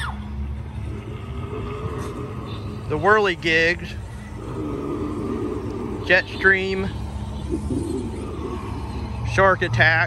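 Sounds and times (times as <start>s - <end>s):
low rumble of outdoor background noise: 0.0s - 10.0s.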